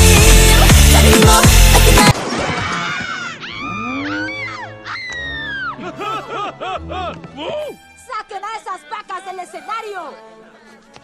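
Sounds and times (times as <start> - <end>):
loud music: 0.0 - 2.2
cartoon sliding wavering cries: 3.3 - 6.3
high falling squeal: 3.4 - 5.8.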